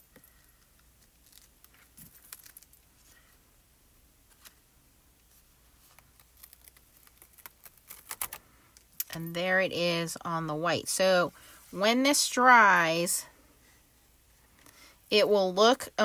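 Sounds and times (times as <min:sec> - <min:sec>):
plastic stencil clicks and rustles: 0:05.8 - 0:09.0.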